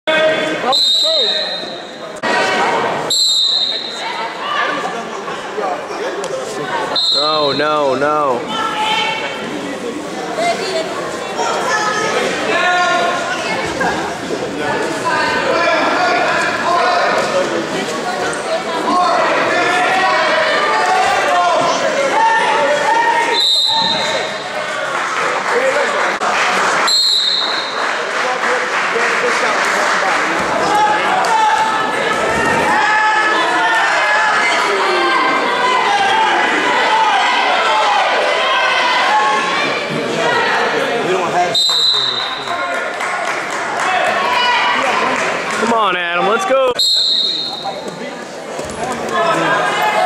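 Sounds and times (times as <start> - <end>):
crowd shouting and cheering: 0.0 - 50.0
referee's whistle blasts: 0.7 - 2.0, 3.1 - 4.0, 6.9 - 7.6, 23.3 - 24.4, 26.9 - 27.8, 41.5 - 42.5, 46.7 - 47.9
people shouting: 30.6 - 40.7.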